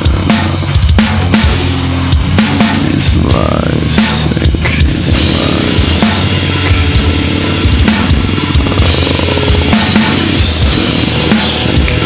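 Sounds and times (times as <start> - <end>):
drum kit rapid strokes: 0.0 - 12.0
heavy metal band playing: 0.0 - 12.0.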